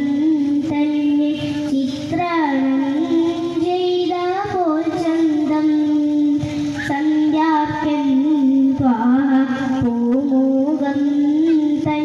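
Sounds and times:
boy singing into a microphone: 0.0 - 12.0.

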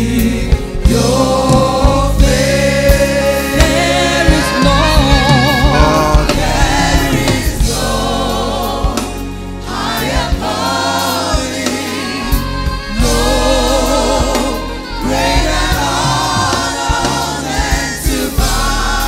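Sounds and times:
woman lead singing with vibrato: 0.0 - 9.2, 11.3 - 19.0
gospel choir singing: 0.0 - 19.0.

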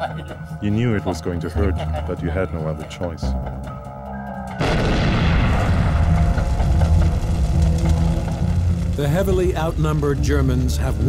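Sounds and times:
background music: 0.0 - 11.0
heavy explosion rumbling: 4.6 - 11.0.

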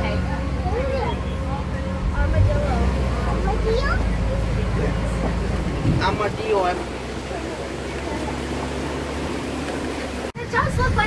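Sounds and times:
road noise: 0.0 - 11.0
truck engine droning: 0.0 - 11.0.

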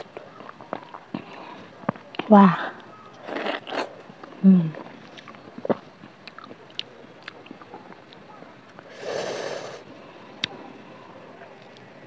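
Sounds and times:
chewing mango: 0.0 - 9.0.

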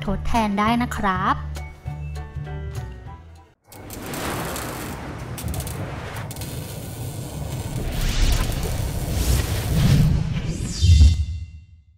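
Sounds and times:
hissing static-like noise: 3.8 - 9.9
deep rumble: 3.8 - 10.7.

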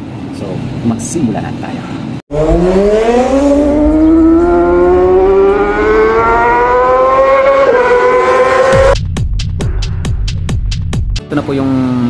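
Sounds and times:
rising electronic tone: 2.3 - 9.0
sharp electronic hits: 8.3 - 11.0.

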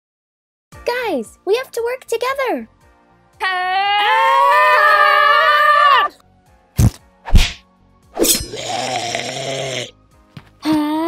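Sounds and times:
sharp whacks: 6.8 - 7.6.

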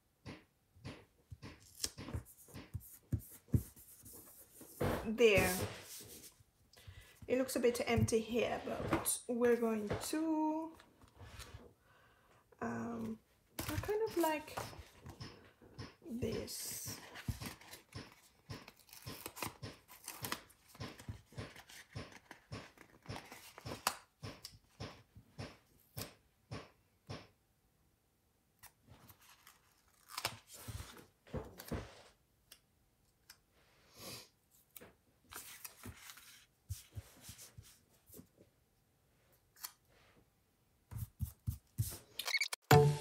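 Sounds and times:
fingers tapping on paper: 13.7 - 27.2.

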